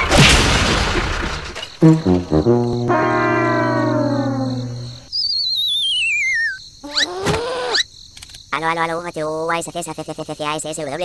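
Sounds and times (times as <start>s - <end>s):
buzzy tone sliding down: 2.4s - 5.1s.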